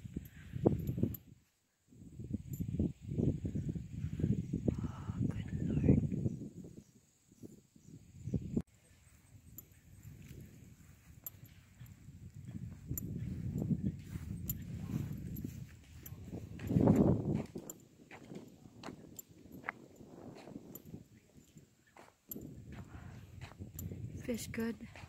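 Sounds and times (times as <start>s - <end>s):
wind rumbling on microphone: 0.0s - 25.0s.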